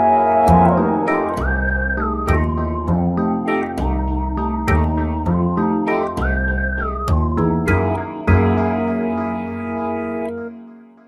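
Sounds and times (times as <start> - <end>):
held musical chord: 0.0 - 5.2.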